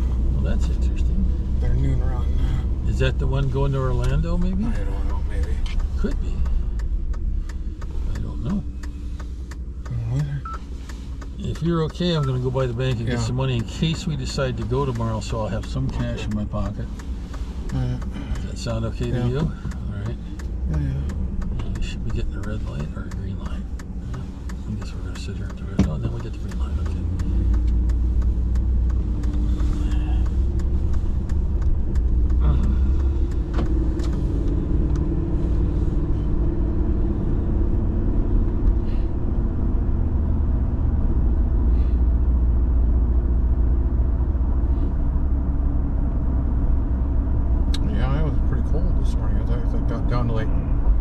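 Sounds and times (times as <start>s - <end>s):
car engine and tyre rumble: 0.0s - 51.0s.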